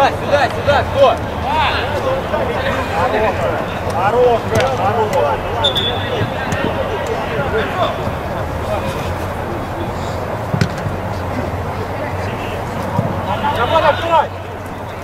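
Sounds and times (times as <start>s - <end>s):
players shouting: 0.0s - 15.0s
ball kicks: 4.5s - 8.2s, 10.5s - 11.0s.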